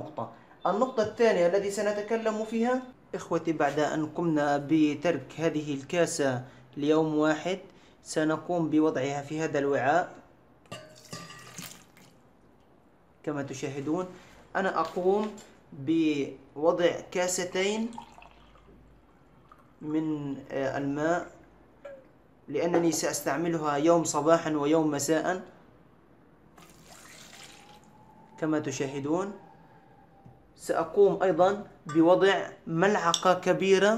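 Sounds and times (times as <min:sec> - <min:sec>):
water pouring into metal pot: 0:10.9 - 0:12.1, 0:17.9 - 0:18.8, 0:26.6 - 0:27.9.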